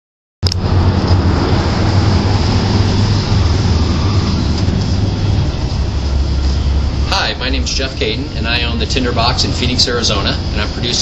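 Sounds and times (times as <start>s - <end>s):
low rumble of traffic: 0.4s - 11.0s.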